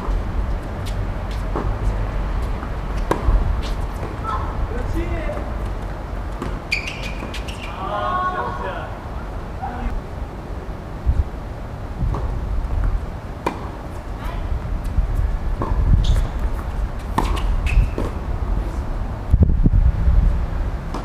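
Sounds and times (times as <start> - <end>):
rackets striking tennis ball: 2.5 - 7.9, 12.8 - 15.0, 15.6 - 18.2
steady low rumble: 8.7 - 20.9.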